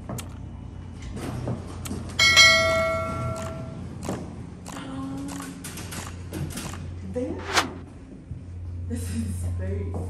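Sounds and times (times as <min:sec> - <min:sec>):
bright bell ding: 0:02.2 - 0:03.8.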